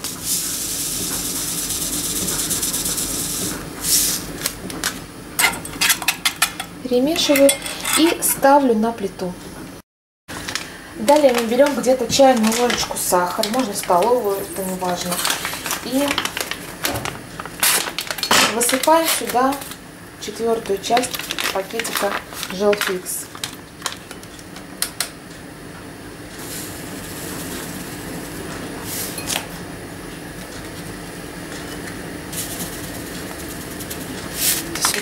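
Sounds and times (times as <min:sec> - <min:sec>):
sugar pouring grainy hiss: 0:00.0 - 0:04.2, 0:26.4 - 0:29.2, 0:32.3 - 0:34.9
metal spoon clinking on pot: 0:05.4 - 0:08.3
paper sachet crackling: 0:10.4 - 0:19.8, 0:20.9 - 0:24.1.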